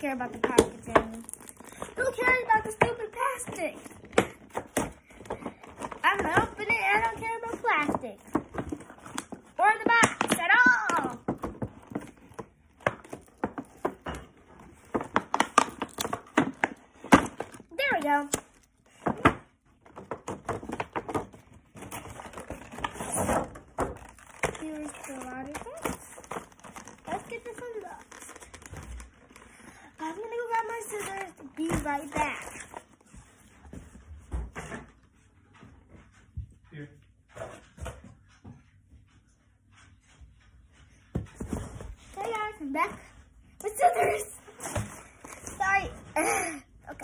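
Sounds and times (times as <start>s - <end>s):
child's voice: 0.0s - 1.2s, 1.8s - 4.0s, 6.0s - 8.4s, 9.6s - 11.3s, 17.7s - 18.4s, 24.5s - 26.1s, 27.1s - 28.4s, 30.0s - 32.7s, 42.2s - 47.0s
packaging rustling and tearing: 0.2s - 2.0s, 19.9s - 33.0s.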